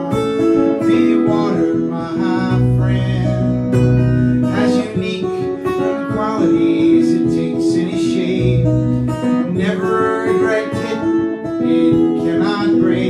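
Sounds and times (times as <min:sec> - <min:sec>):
man singing: 0:00.0 - 0:13.0
strummed acoustic guitar: 0:00.0 - 0:13.0.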